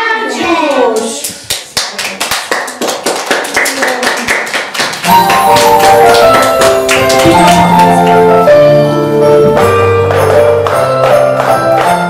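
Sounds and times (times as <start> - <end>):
children clapping: 0.7 - 8.6, 9.6 - 12.0
melody over a beat: 5.1 - 12.0.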